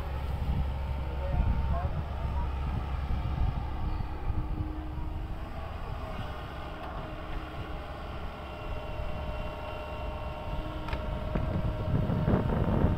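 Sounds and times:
distant excavator engine rumble: 0.0 - 12.9
steady whine: 0.0 - 12.9.

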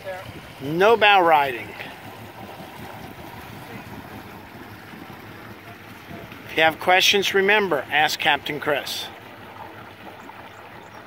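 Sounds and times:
moving water: 0.0 - 11.0.

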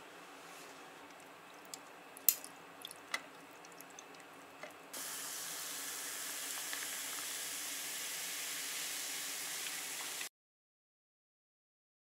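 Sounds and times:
soda fizzing over ice: 5.0 - 10.3.

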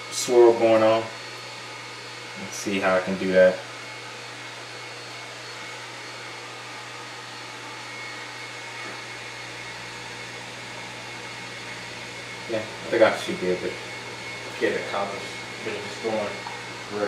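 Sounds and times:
electric motors whirring: 0.0 - 17.0.

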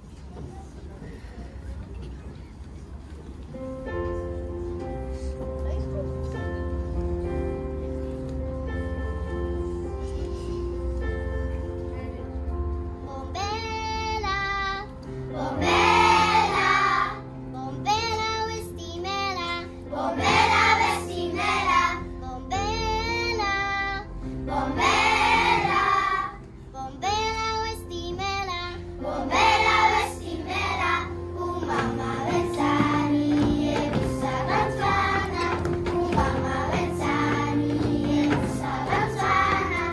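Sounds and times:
held accompaniment notes: 3.5 - 39.9
children's choir singing: 15.3 - 17.3, 19.9 - 22.0, 24.5 - 26.4, 29.0 - 39.9.

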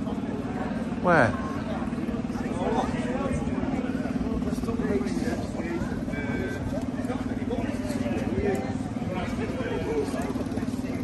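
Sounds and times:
people talking: 0.0 - 11.0
scooter engine idling: 0.0 - 11.0.

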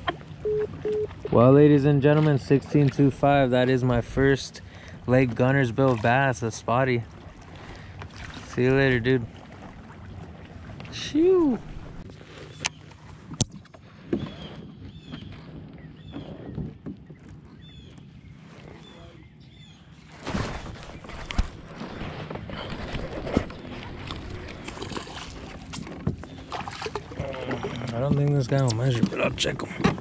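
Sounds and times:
water lapping against kayak hull: 0.0 - 30.0.

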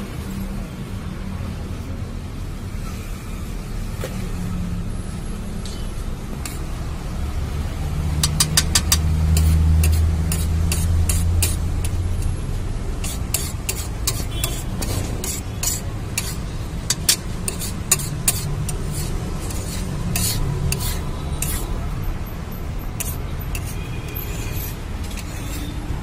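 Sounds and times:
metal spatula scraping griddle: 8.2 - 21.8, 22.9 - 26.0.

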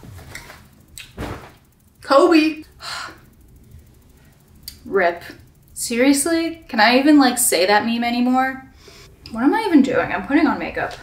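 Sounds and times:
faint low room hum: 0.0 - 11.0
woman speaking: 2.0 - 2.7, 4.8 - 8.7, 9.3 - 11.0.

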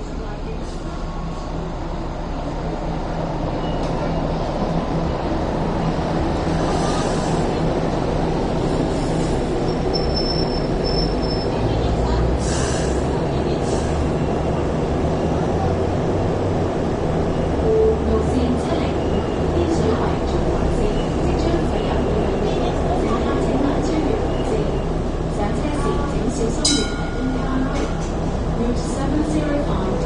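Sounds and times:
wheels rumbling on rails: 0.0 - 30.0.

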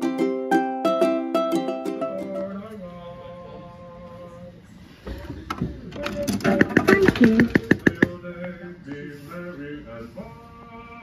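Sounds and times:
light ukulele music: 0.0 - 3.6.

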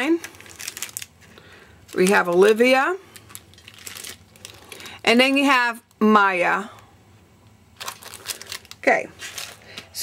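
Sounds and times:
plastic packaging crinkling: 0.0 - 6.0, 7.7 - 10.0.

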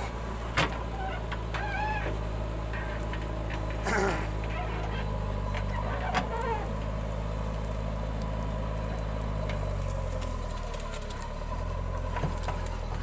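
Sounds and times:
diesel engine under load: 0.0 - 13.0
tractor diesel idling: 0.0 - 13.0.

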